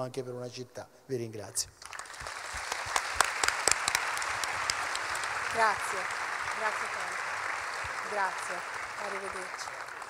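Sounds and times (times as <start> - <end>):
applause: 1.8 - 10.0.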